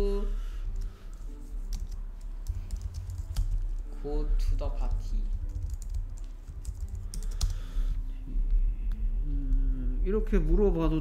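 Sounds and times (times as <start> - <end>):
computer keyboard key clicks: 1.7 - 3.7, 5.3 - 7.6.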